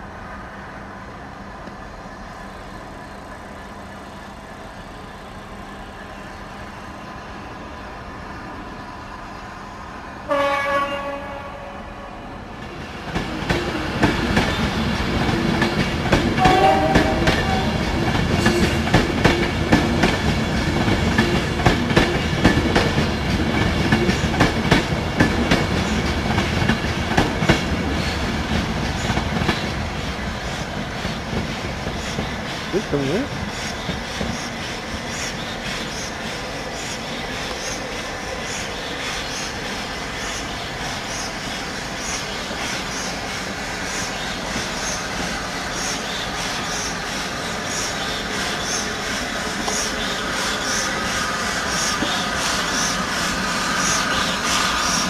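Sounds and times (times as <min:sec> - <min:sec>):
steam locomotive whistle: 0:10.3 - 0:12.1, 0:16.4 - 0:17.9
steam locomotive exhaust beats: 0:13.2 - 0:55.0.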